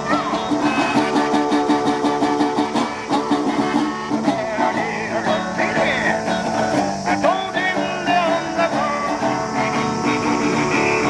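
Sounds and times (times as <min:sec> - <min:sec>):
blues-country guitar playing: 0:00.0 - 0:11.0.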